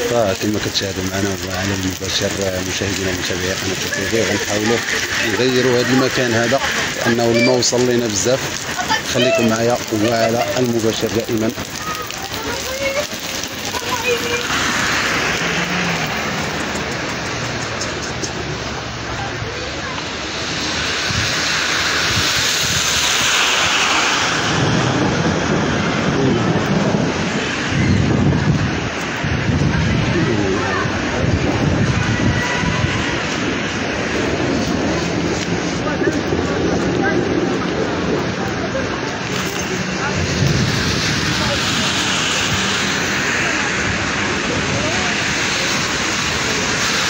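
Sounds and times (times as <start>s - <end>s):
heavy rain on pavement: 0.0s - 47.0s.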